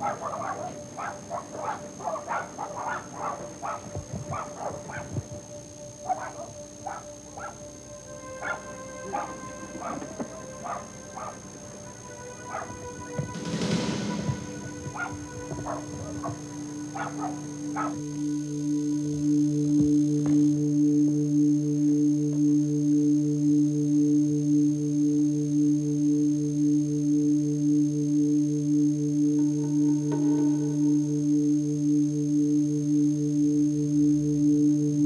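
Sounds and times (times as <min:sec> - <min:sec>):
dog barking: 0:00.0 - 0:05.2, 0:06.0 - 0:07.6, 0:08.4 - 0:11.4, 0:12.4 - 0:12.8, 0:14.9 - 0:18.0
music score of held tones: 0:00.0 - 0:35.0
rushing noise: 0:09.0 - 0:17.8.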